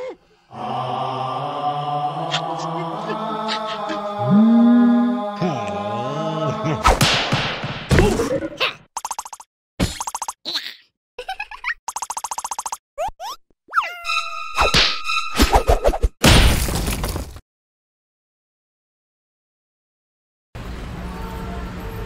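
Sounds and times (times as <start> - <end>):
chant-like drone: 0.5 - 6.8.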